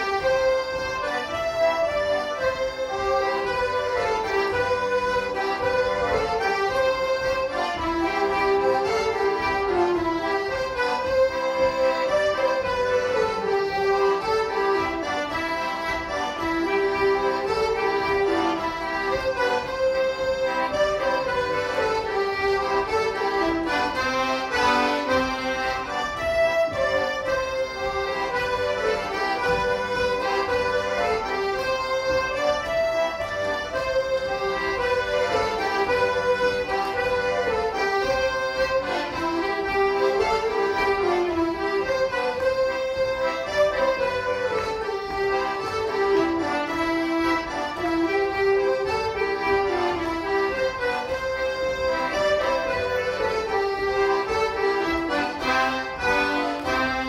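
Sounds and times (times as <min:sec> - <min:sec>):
flute melody: 0:00.0 - 0:47.2
button accordions playing: 0:00.0 - 0:57.0.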